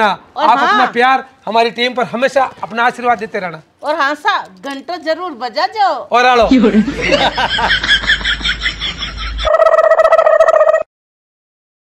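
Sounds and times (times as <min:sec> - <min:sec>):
people giggling: 0:06.4 - 0:09.6.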